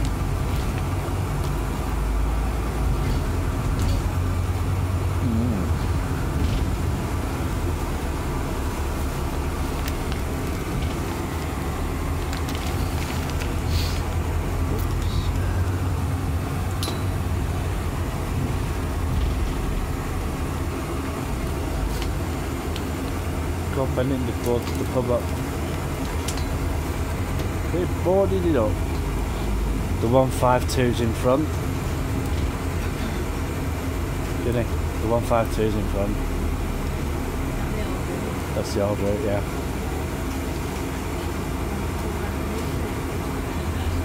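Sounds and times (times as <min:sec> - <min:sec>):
bus engine and road rumble: 0:00.0 - 0:44.0.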